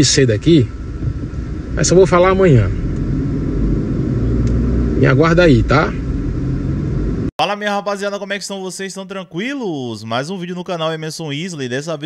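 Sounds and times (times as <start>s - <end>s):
faint hum: 0.0s - 7.3s
vehicle running low rumble: 0.0s - 7.3s.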